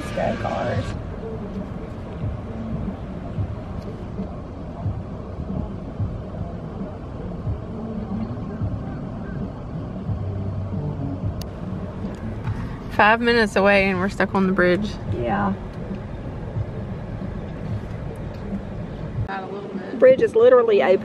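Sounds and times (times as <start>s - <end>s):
car cabin rumble: 0.0s - 19.3s.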